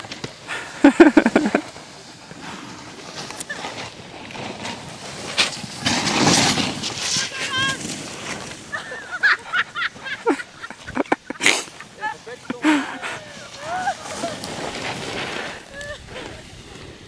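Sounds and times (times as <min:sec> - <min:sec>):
people laughing: 0:00.6 - 0:01.7, 0:08.7 - 0:14.6.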